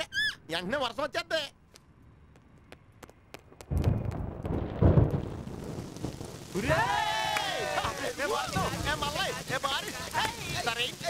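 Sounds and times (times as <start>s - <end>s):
thunder rumbling: 3.6s - 11.0s.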